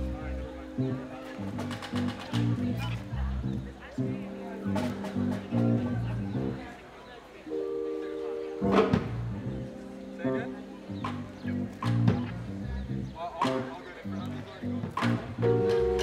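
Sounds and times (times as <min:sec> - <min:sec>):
electric keyboard chords: 0:00.0 - 0:06.8, 0:07.4 - 0:16.0.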